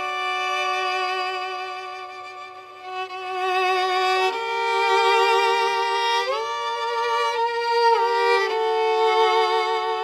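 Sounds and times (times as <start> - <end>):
violin playing slow melody: 0.0 - 10.0.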